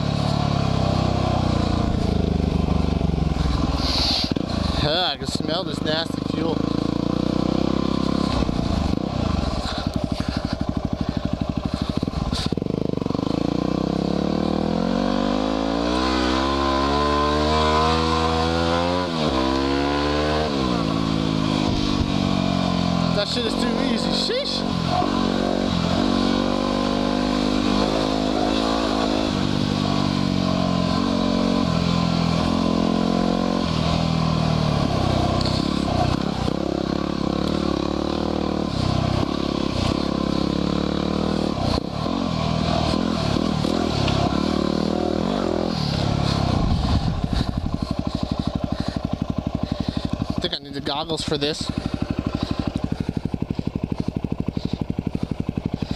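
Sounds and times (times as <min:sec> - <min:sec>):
motorcycle engine revving: 0:00.0 - 0:55.9.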